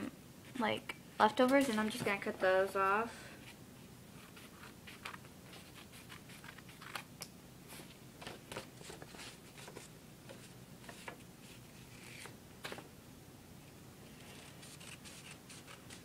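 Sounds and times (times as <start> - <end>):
paper rustling: 4.2 - 7.1, 7.7 - 12.8
scissors snipping paper: 14.2 - 16.0.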